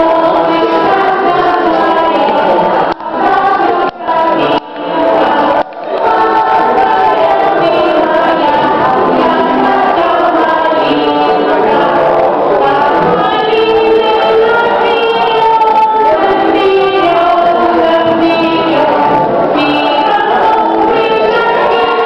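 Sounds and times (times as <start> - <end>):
children singing: 0.0 - 22.0.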